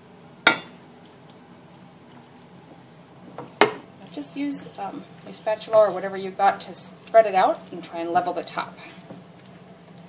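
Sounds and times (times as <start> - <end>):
cookware knocking ceramic dish: 0.5 - 0.7.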